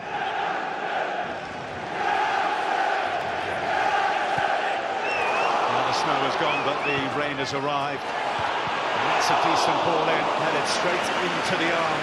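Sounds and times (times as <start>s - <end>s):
football crowd chanting: 0.0s - 6.6s.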